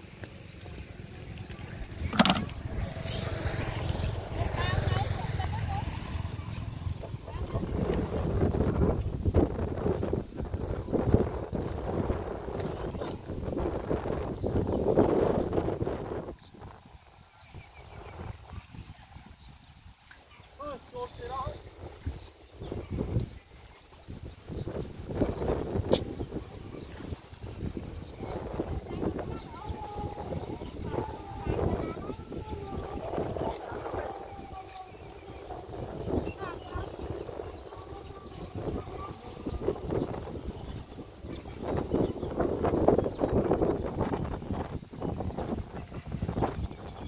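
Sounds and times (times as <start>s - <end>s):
gusty wind buffeting microphone: 1.1s - 20.0s, 20.6s - 47.0s.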